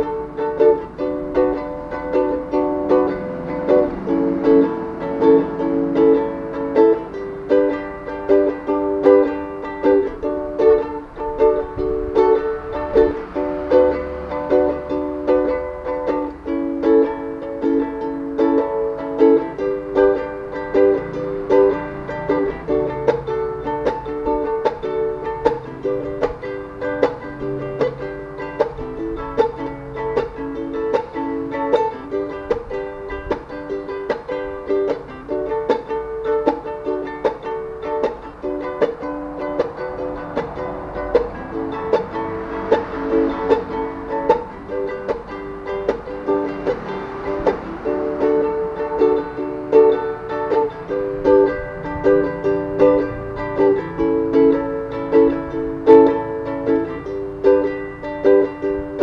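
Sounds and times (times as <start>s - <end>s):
ukulele strumming: 0.0s - 59.0s.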